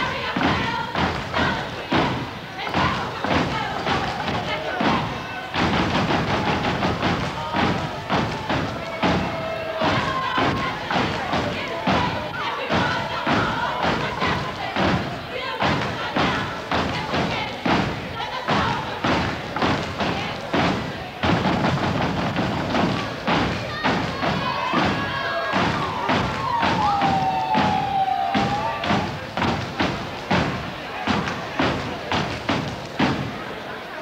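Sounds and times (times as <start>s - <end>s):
stomping and clapping in unison: 0.0s - 33.7s
voices over the beat: 0.0s - 34.0s.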